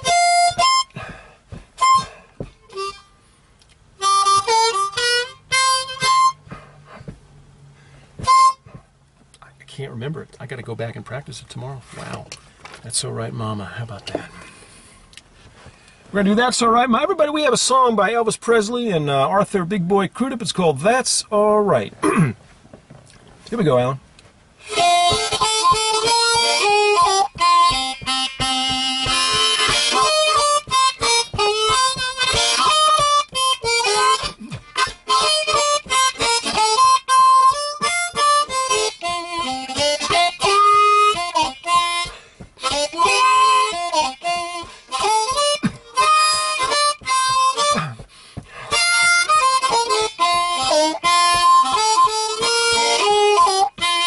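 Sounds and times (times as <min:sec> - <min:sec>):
blues harmonica: 0:00.0 - 0:09.5, 0:24.5 - 0:54.0.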